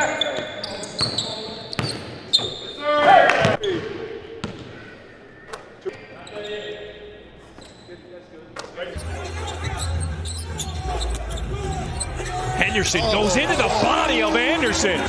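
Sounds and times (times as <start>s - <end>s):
crowd murmur: 8.9s - 15.0s.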